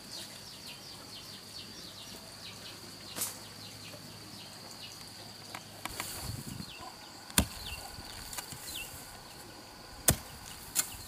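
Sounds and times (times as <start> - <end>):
high insect whine: 0.0 - 11.0
hoe chopping into soil: 7.3 - 9.0, 10.0 - 11.0.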